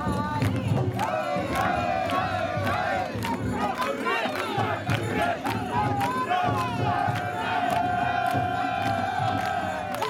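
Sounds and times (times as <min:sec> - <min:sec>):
sharp claps: 0:00.0 - 0:10.0
crowd shouting rhythmic call: 0:00.4 - 0:10.0.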